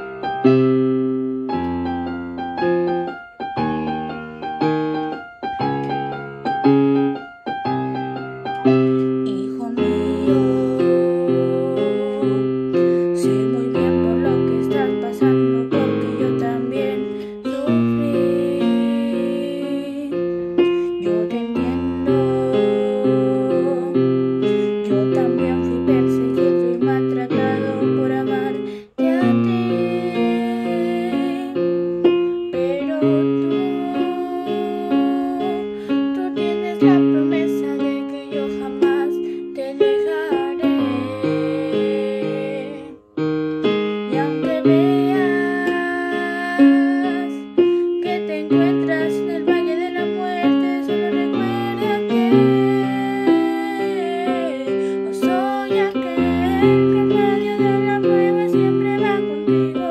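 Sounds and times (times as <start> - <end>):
electric piano accompaniment: 0.0 - 59.9
girl singing worship song: 8.8 - 31.8, 32.4 - 43.0, 44.1 - 59.9.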